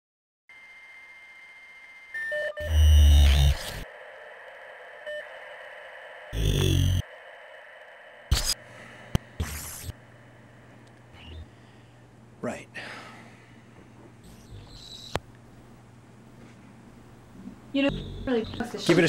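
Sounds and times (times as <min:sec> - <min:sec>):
steady hum with high tone: 0:00.5 - 0:19.0
static bursts with deep buzz: 0:02.6 - 0:03.8, 0:06.3 - 0:07.0, 0:16.9 - 0:18.8.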